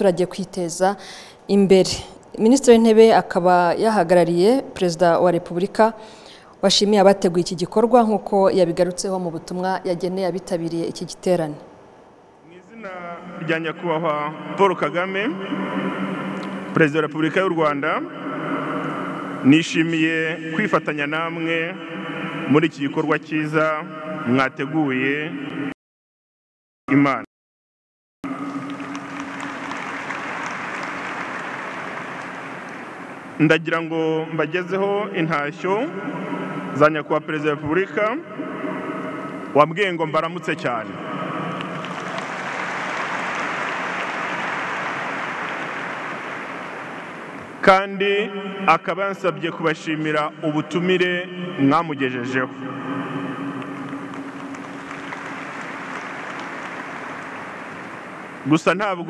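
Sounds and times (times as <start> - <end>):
audience applauding: 28.3 - 33.4, 41.1 - 47.6, 52.9 - 58.4
low steady hum: 28.3 - 58.7.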